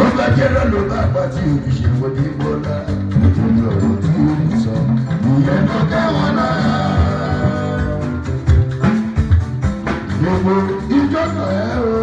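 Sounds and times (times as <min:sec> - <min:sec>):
drum kit: 0:00.0 - 0:12.0
keyboard playing: 0:00.0 - 0:12.0
live band music: 0:00.0 - 0:12.0.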